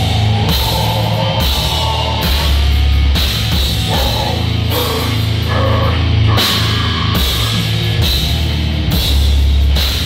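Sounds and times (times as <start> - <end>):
distorted electric guitar: 0.0 - 10.0
drum kit: 0.0 - 10.0.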